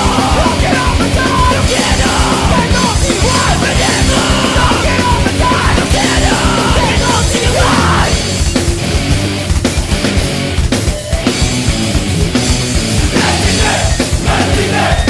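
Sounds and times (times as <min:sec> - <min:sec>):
person shouting vocals: 0:00.0 - 0:08.2
punk band with electric guitars: 0:00.0 - 0:15.0.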